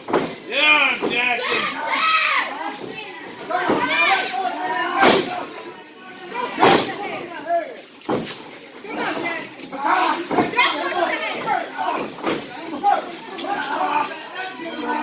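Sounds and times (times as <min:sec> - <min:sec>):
crowd calling out: 0:00.4 - 0:07.4, 0:08.8 - 0:15.0.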